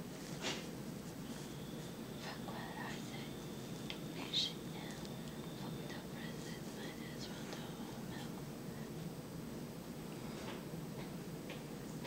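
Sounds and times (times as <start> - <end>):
low room hum: 0.0 - 12.0
faint whispering: 2.2 - 9.0.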